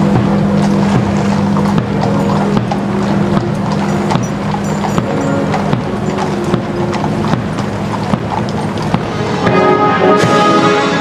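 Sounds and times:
military band playing funeral march: 0:00.0 - 0:11.0.

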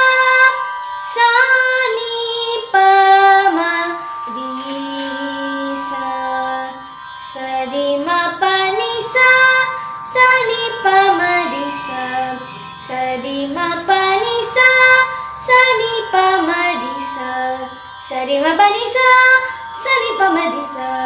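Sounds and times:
steady drone: 0:00.0 - 0:21.0.

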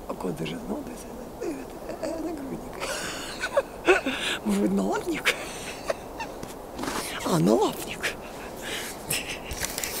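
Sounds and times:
rustling of handheld camera: 0:06.2 - 0:10.0
breathy noises: 0:08.0 - 0:10.0.

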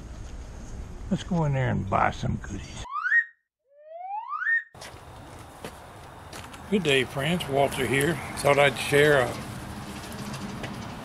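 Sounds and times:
faint outdoor hiss: 0:04.8 - 0:11.0.

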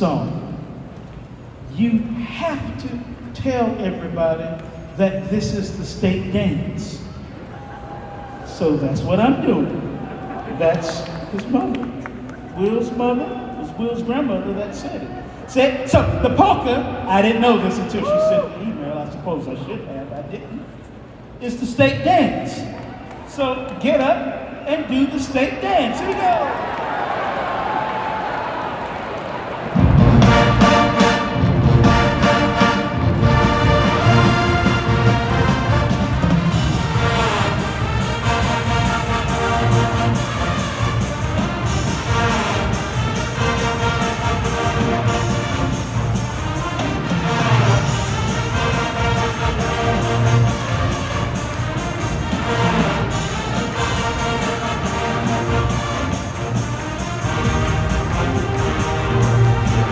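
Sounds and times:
marching band playing a polka: 0:29.8 - 0:59.9.

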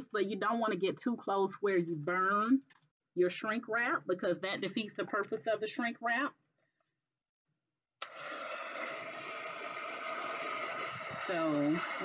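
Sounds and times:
heat gun blowing air: 0:08.0 - 0:12.0.

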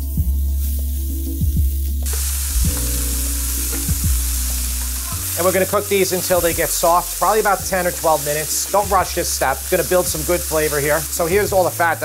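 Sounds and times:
background music: 0:00.0 - 0:12.0
vegetables sizzling in a pan: 0:00.0 - 0:12.0.

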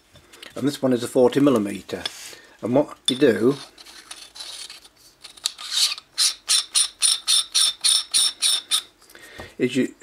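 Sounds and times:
metal threads scraping: 0:03.1 - 0:08.9.

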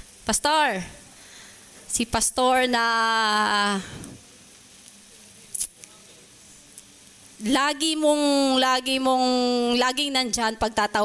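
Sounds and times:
microphone hiss: 0:00.0 - 0:11.0
soft breath or click: 0:03.8 - 0:04.2.

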